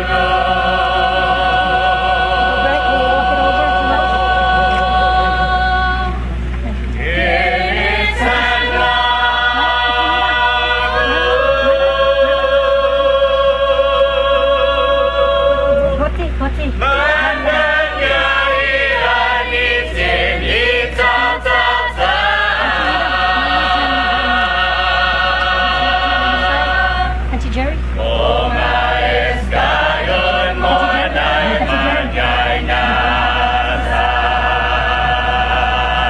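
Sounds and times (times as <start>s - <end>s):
group chanting: 0.0s - 6.2s, 7.0s - 16.1s, 16.8s - 27.3s, 28.0s - 36.0s.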